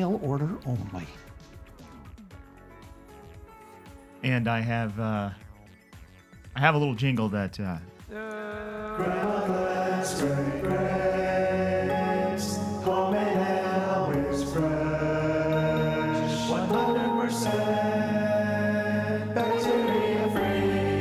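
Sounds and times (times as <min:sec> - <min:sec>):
slow vocal jingle: 0:08.1 - 0:21.0.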